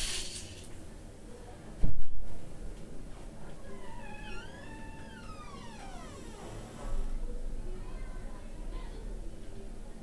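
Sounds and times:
low room noise: 0:00.0 - 0:10.0
high-pitched wavering cry: 0:03.7 - 0:07.2.

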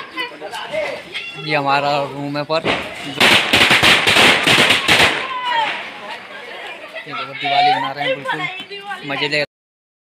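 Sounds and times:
firecrackers cracking: 0:02.5 - 0:06.4.

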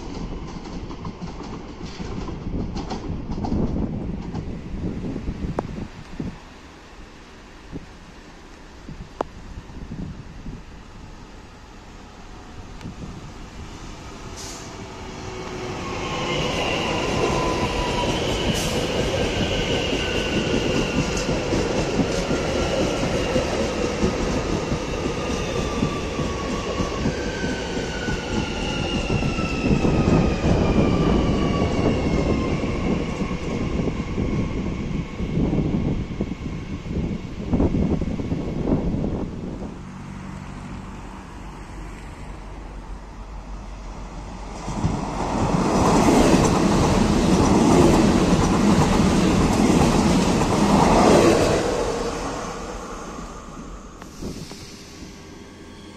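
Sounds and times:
train wheels rumbling on rails: 0:00.0 - 0:06.4, 0:08.9 - 0:40.7, 0:41.3 - 0:55.7.

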